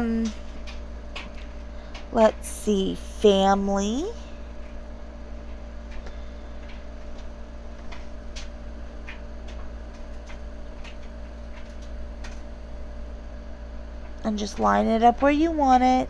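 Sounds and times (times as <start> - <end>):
steady electrical hum: 0.0 - 16.0.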